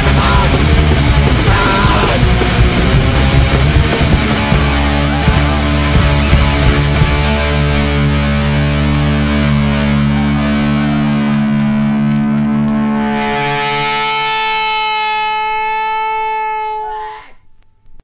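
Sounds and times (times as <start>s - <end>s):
bass guitar: 0.0s - 18.0s
distorted electric guitar: 0.0s - 18.0s.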